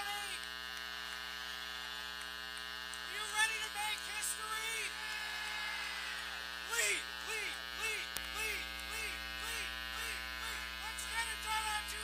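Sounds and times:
person speaking: 0.0s - 0.4s, 3.0s - 5.2s, 6.6s - 12.0s
buzzy electrical mains hum: 0.0s - 12.0s.

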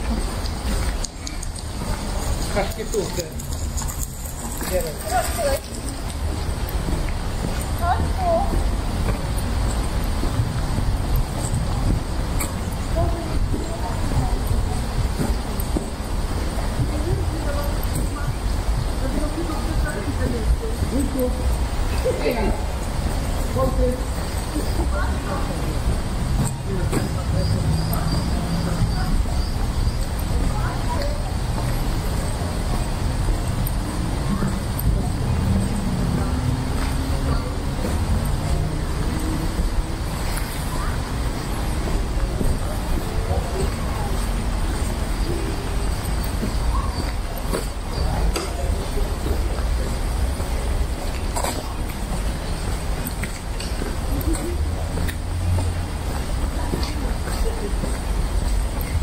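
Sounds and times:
wind noise on microphone: 0.0s - 24.2s
faint voices: 0.0s - 59.0s
steady low rumble: 5.2s - 59.0s.

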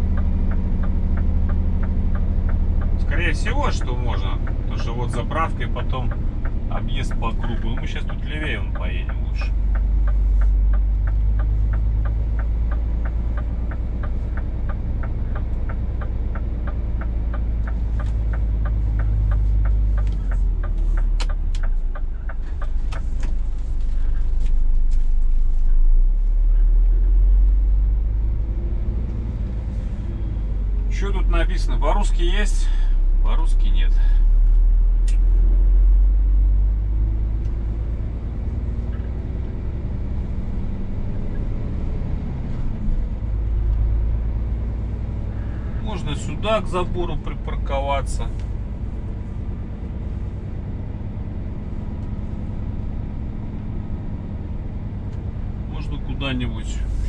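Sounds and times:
turn signal relay ticking: 0.0s - 25.2s, 36.7s - 56.9s
diesel truck engine running: 0.0s - 57.0s.

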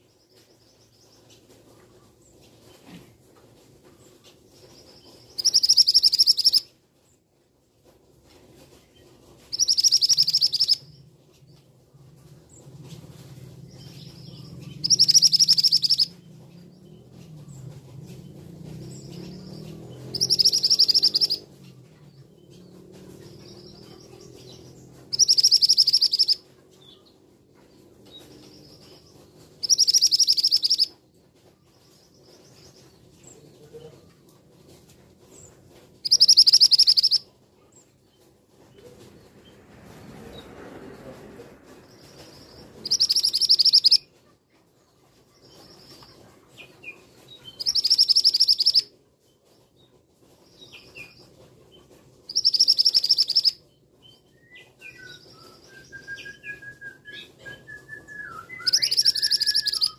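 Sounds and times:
bird high trilled calls: 5.3s - 6.7s, 9.5s - 10.9s, 14.0s - 16.2s, 18.9s - 21.5s, 23.5s - 27.0s, 29.6s - 30.9s, 36.0s - 37.3s, 42.1s - 44.1s, 47.4s - 48.9s, 52.3s - 59.9s.

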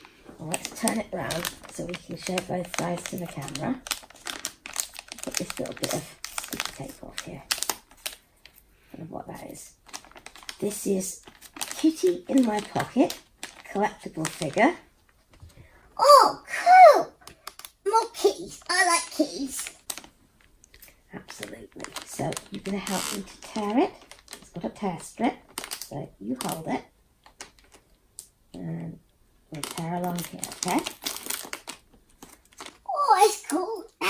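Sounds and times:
foil packet tearing and crinkling: 0.0s - 8.6s, 9.7s - 14.8s, 17.3s - 20.2s, 21.3s - 24.7s, 25.4s - 26.6s, 27.2s - 27.8s, 29.5s - 33.7s
person exclaiming: 16.0s - 17.2s, 17.9s - 19.6s, 32.9s - 34.0s.

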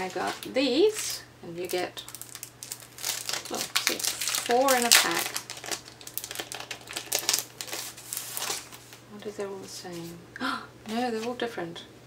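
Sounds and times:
plastic packaging crinkling: 0.0s - 9.0s.

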